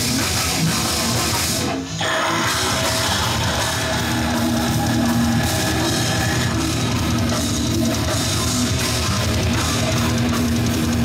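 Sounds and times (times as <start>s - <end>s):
distorted electric guitar: 0.0s - 11.0s
drum kit: 0.0s - 11.0s.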